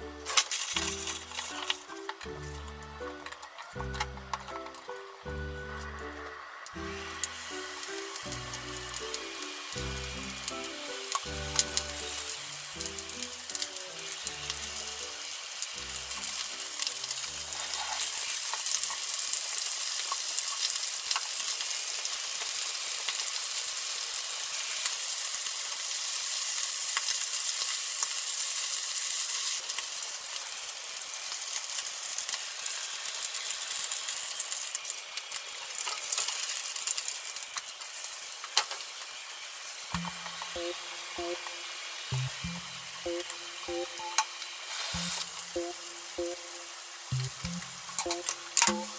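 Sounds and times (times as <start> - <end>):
light background music: 0.0 - 18.3, 40.0 - 48.9
fish sizzling in a frying pan: 0.0 - 48.9.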